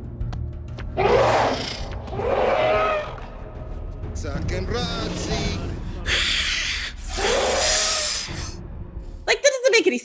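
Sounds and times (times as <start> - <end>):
film score: 0.0 - 10.0.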